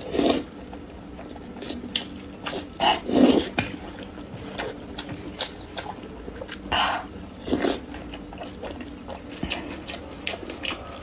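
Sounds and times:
faint steady hum: 0.0s - 11.0s
slurping and chewing noodles: 0.0s - 11.0s.

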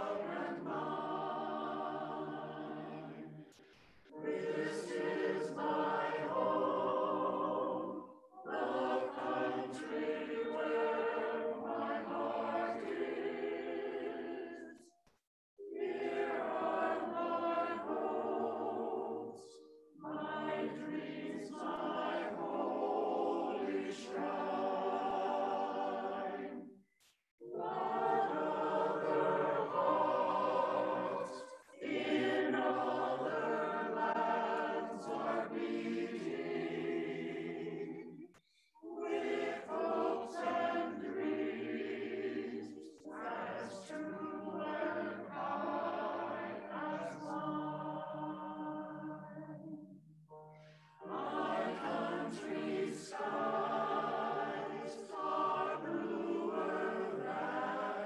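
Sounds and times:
choir singing a hymn: 0.0s - 14.9s, 15.6s - 26.8s, 27.4s - 58.0s.

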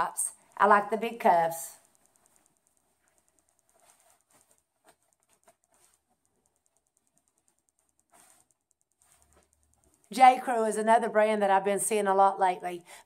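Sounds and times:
faint ticks: 0.3s - 11.1s.

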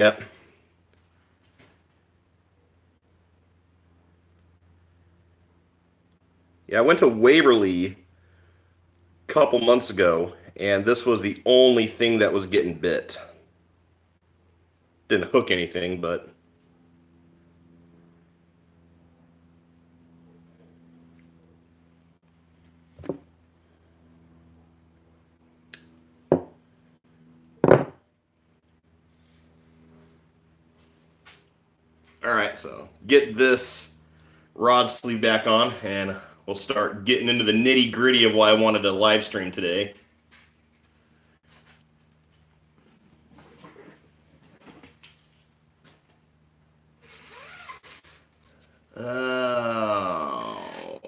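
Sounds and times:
faint steady hum: 0.0s - 51.0s.

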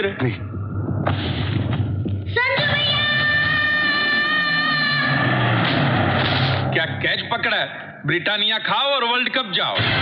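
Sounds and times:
low rumble: 0.2s - 3.6s.

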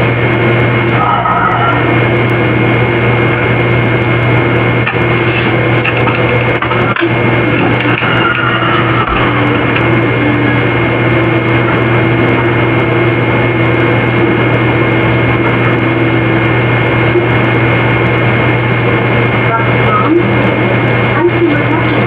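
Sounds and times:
loud steady hum: 0.0s - 22.0s.

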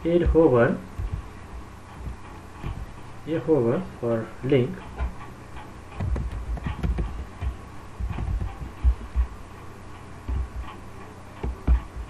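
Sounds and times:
computer keyboard typing: 6.0s - 7.1s.

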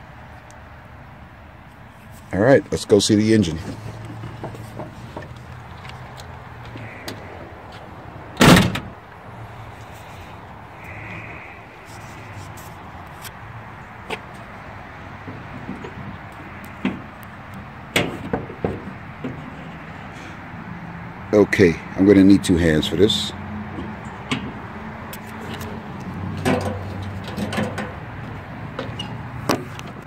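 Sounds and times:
car door slamming: 8.4s - 9.0s, 17.9s - 19.5s.

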